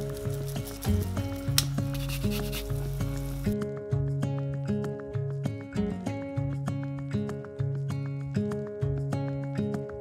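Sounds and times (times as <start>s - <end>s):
food sizzling in a saucepan: 0.0s - 3.6s
background guitar music: 0.0s - 10.0s.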